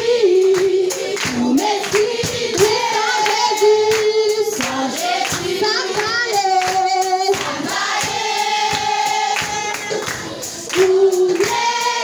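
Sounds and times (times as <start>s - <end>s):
congregation singing a hymn: 0.0s - 12.0s
hands clapping in time: 0.4s - 11.7s.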